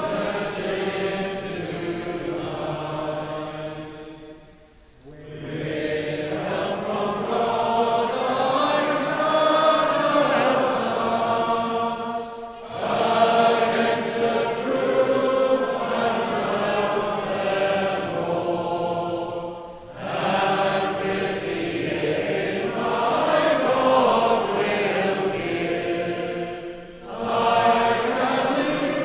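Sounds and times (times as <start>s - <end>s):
congregation singing a psalm: 0.0s - 29.0s.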